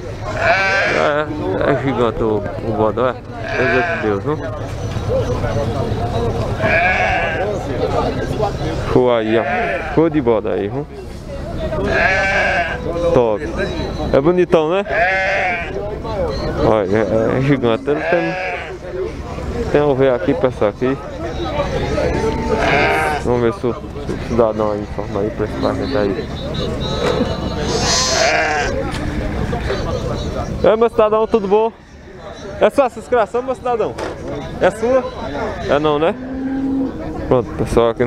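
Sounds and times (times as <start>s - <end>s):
murmur of voices: 0.0s - 38.0s
goat or sheep bleating: 0.2s - 1.3s, 3.4s - 4.3s, 6.6s - 7.6s, 9.2s - 10.1s, 11.8s - 12.9s, 14.8s - 15.8s, 17.7s - 18.8s, 22.0s - 23.3s, 26.8s - 28.8s.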